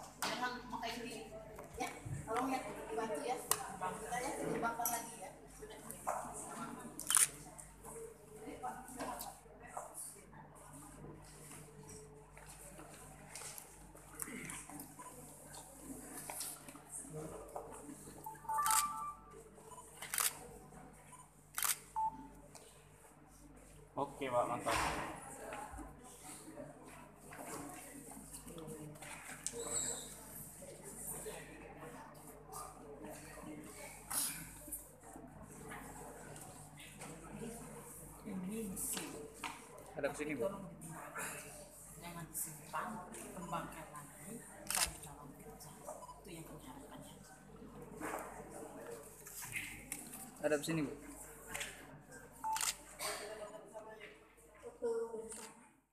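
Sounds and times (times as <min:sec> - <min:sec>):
camera shutters clicking: 0:07.0 - 0:07.3, 0:18.5 - 0:19.0, 0:21.6 - 0:21.8, 0:44.7 - 0:45.0
camera shutter click: 0:18.5 - 0:19.0.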